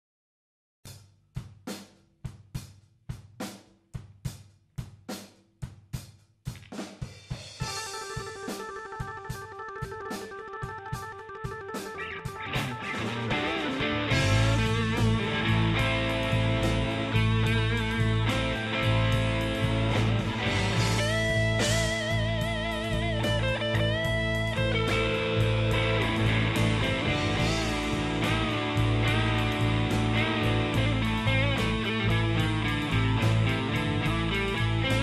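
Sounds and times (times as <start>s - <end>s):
drum kit playing: 0.9s - 35.0s
bass guitar: 7.6s - 35.0s
blues-rock band playing: 7.6s - 35.0s.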